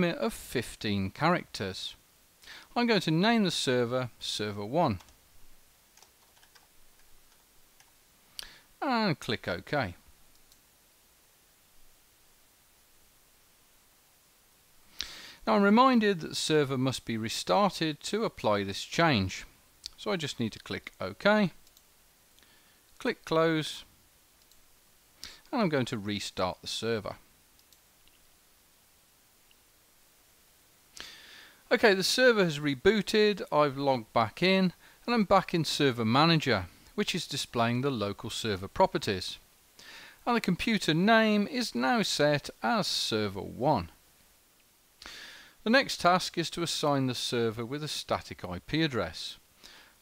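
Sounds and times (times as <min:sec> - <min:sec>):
computer keyboard keystrokes: 0:06.0 - 0:06.7.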